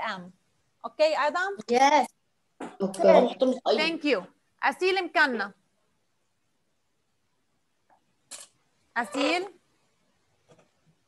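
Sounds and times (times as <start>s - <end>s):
person speaking: 1.0s - 4.3s.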